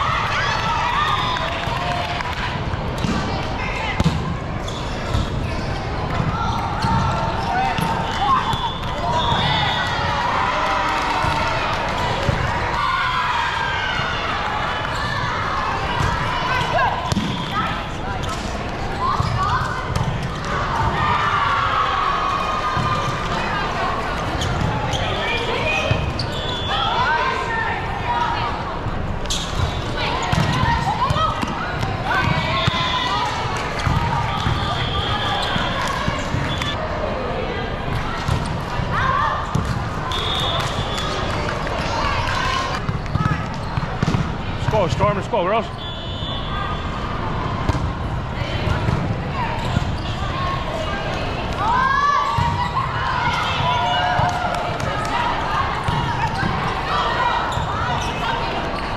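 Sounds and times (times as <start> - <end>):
volleyball struck and bouncing: 4.0 - 4.3.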